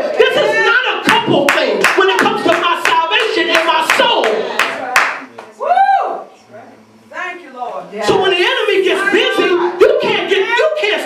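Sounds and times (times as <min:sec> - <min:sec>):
preacher chanting: 0:00.1 - 0:04.5
congregation clapping in rhythm: 0:00.8 - 0:05.5.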